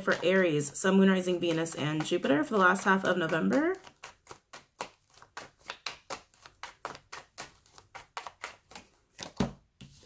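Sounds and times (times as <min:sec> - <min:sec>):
cards shuffling and clicking: 0:00.0 - 0:10.0.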